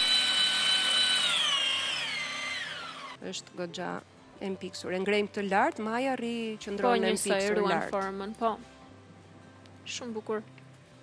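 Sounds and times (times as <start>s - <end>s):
stand mixer motor whining: 0.0s - 3.2s.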